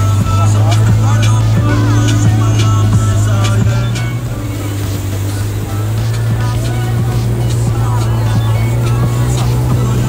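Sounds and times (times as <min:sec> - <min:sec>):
atv engine droning: 0:00.0 - 0:10.0.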